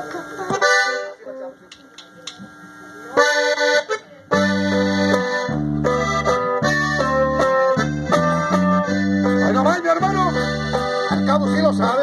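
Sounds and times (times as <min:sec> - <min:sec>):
band playing a tune: 0:00.0 - 0:01.6, 0:03.1 - 0:12.0
accordion melody: 0:00.0 - 0:01.7, 0:03.1 - 0:12.0
low bass notes: 0:04.3 - 0:12.0.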